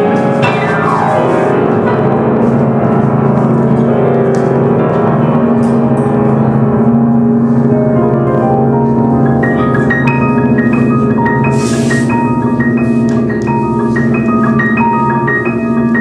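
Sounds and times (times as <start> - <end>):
piano playing: 0.0 - 16.0.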